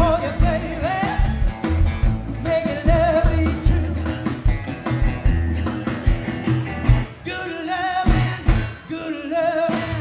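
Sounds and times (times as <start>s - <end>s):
man singing: 0.0s - 4.5s, 7.1s - 10.0s
upright bass: 0.0s - 7.3s, 8.0s - 8.9s
electric guitar: 0.0s - 10.0s.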